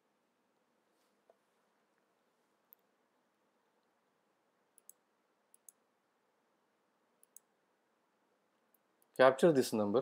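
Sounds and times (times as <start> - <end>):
faint computer mouse clicks: 4.8 - 5.8, 7.2 - 7.5.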